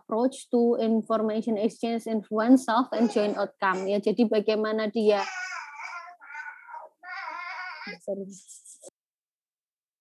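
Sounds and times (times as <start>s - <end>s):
young child whining: 5.2s - 8.0s.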